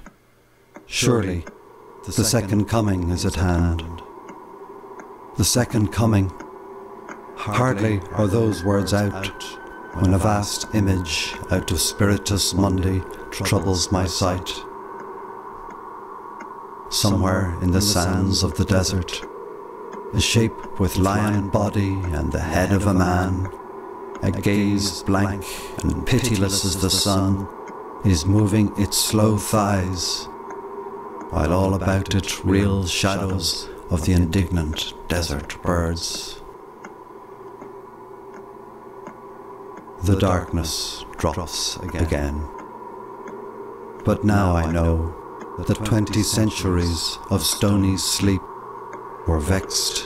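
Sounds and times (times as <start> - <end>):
ambient drone: 0.0 - 50.0
faint steady hum: 0.0 - 50.0
faint ticks: 3.8 - 5.2, 6.3 - 7.3, 15.0 - 16.6, 30.4 - 30.6, 31.2 - 31.4, 34.0 - 40.2, 41.1 - 43.4, 45.4 - 46.2, 47.5 - 49.8.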